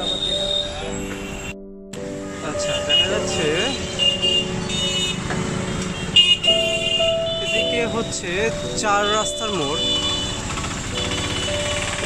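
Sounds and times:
high music-like tones: 0:00.0 - 0:12.0
street traffic: 0:00.0 - 0:12.0
auto-rickshaw engine rattling: 0:02.5 - 0:12.0.

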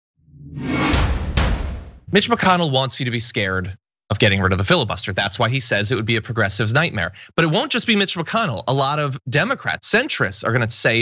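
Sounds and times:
whoosh over deep rumble: 0:00.3 - 0:01.9
sharp swishes: 0:00.5 - 0:01.9.

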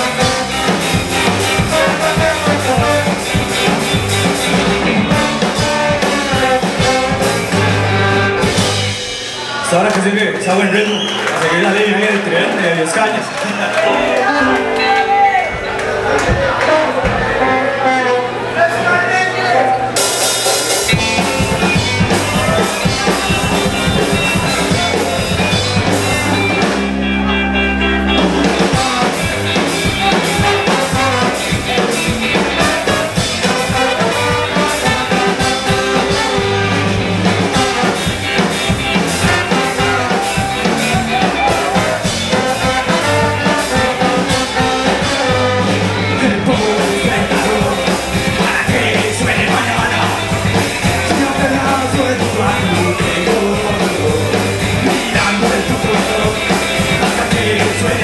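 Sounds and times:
live ska band playing: 0:00.0 - 0:58.0.

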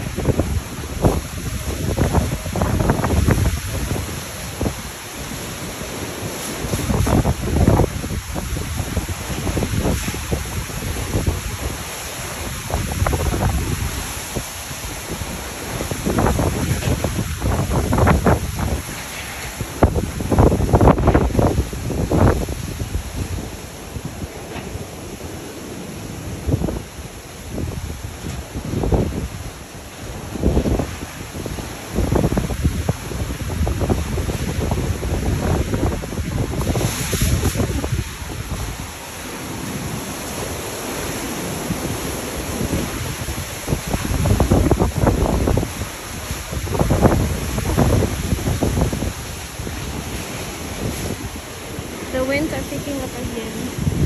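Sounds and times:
strong wind gusts buffeting microphone: 0:00.0 - 0:54.0.

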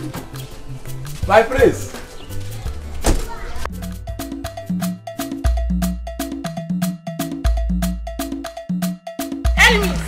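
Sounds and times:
cowbell-like percussion: 0:03.9 - 0:10.0.

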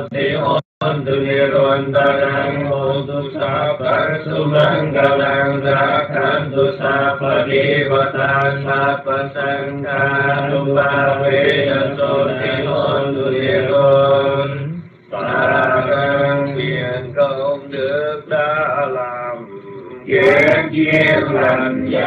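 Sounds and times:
person chanting: 0:00.0 - 0:22.0.

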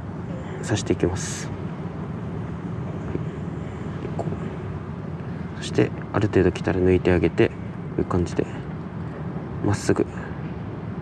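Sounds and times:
low outdoor background rumble: 0:00.0 - 0:11.0.

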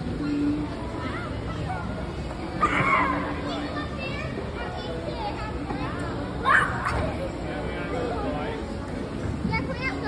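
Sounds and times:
busy indoor background noise: 0:00.0 - 0:10.0
indistinct chatter of voices: 0:00.0 - 0:10.0.

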